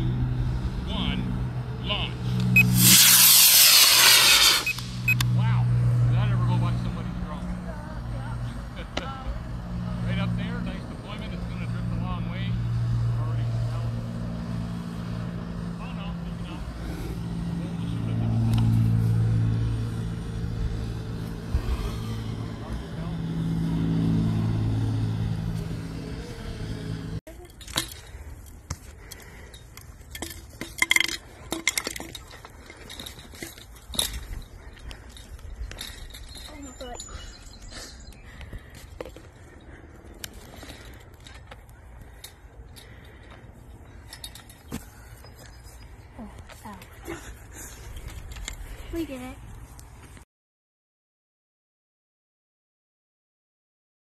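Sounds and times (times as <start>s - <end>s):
drone motors humming: 0.0s - 30.4s
sharp clicks and clinks: 27.4s - 37.3s.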